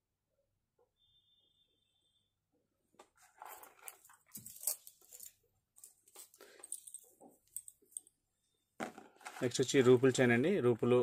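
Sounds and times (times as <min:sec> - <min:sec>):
metal beads clinking: 0:03.4 - 0:08.1.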